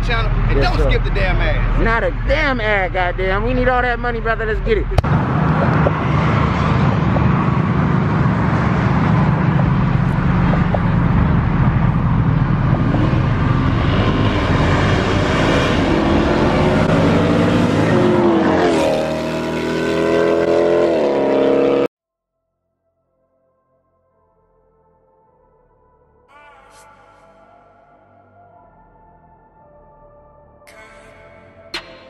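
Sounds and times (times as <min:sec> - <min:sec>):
car engines accelerating hard: 0:00.0 - 0:21.9
engine revving: 0:00.0 - 0:21.9.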